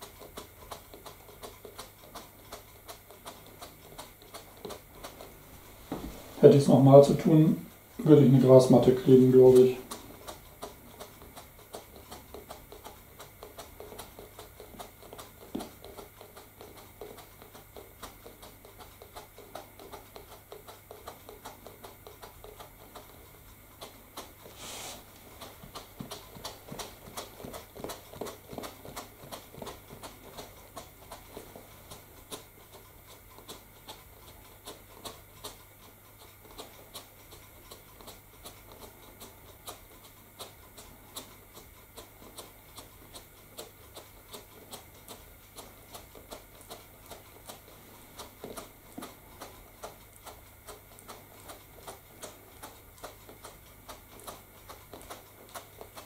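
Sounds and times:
static grass applicator rattling: 0:06.4 - 0:14.2
brief hiss: 0:24.6 - 0:25.0.

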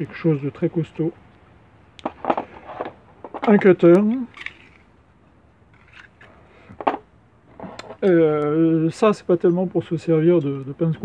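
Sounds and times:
plastic knife handling noises: 0:02.0 - 0:04.9, 0:05.7 - 0:07.0.

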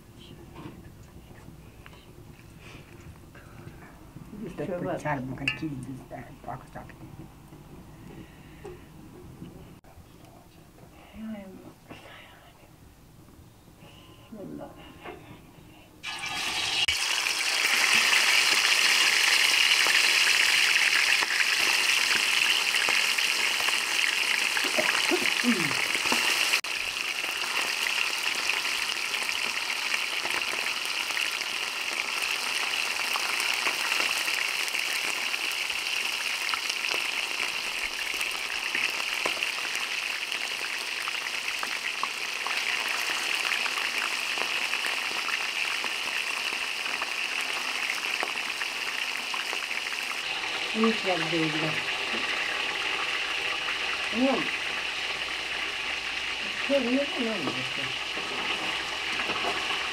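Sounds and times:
chicken deep-frying in oil: 0:16.0 - 0:59.9.

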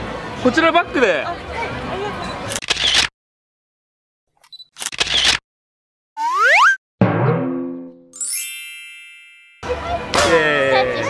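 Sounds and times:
bright sparkling chime: 0:08.2 - 0:09.6.

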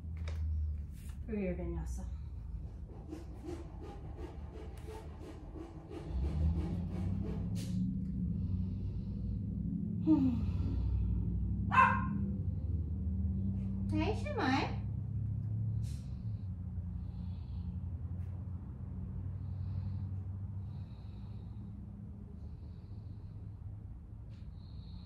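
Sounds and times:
low steady hum: 0:00.0 - 0:25.0
dog barking: 0:11.7 - 0:12.3.

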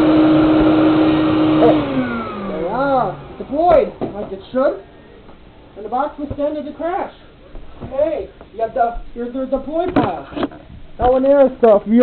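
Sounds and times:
vacuum cleaner motor running: 0:00.0 - 0:04.1.

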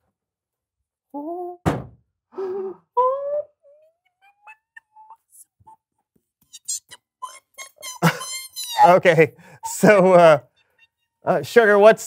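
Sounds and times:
person saying ooh: 0:01.2 - 0:01.6, 0:02.4 - 0:03.8
person gasping: 0:02.3 - 0:02.9, 0:09.4 - 0:09.7.

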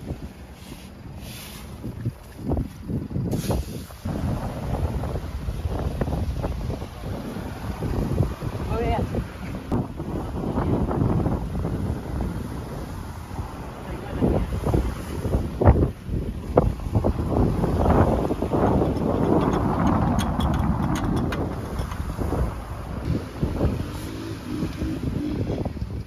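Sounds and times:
wind gusting on microphone: 0:00.0 - 0:26.0.

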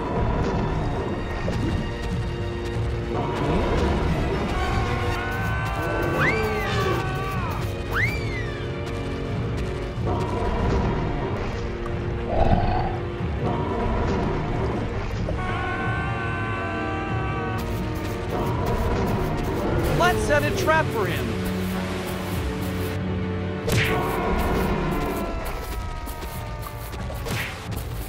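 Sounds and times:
cartoon background music: 0:00.0 - 0:28.0.

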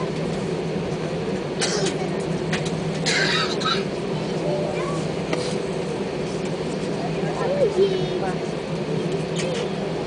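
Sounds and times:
aircraft cabin engine noise: 0:00.0 - 0:10.0.

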